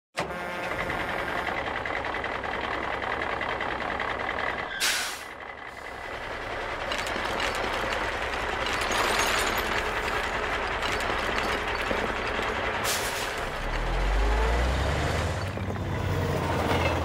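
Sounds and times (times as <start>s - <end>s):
truck engine running: 0.3s - 17.0s
air brakes hissing: 4.7s - 6.0s, 12.8s - 13.5s.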